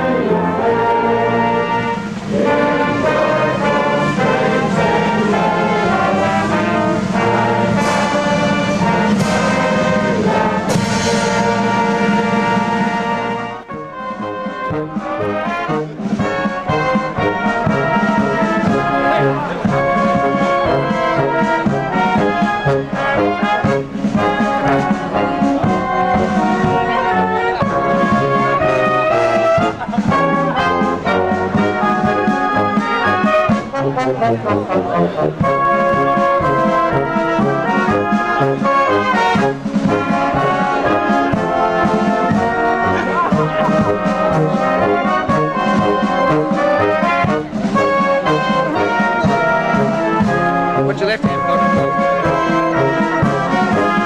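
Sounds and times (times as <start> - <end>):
brass band playing: 0.0 - 54.0.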